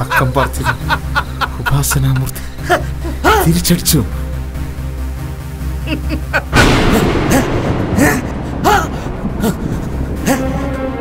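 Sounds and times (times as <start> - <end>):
man laughing maniacally: 0.0 - 3.6, 5.8 - 10.8
loud boom: 6.5 - 10.3.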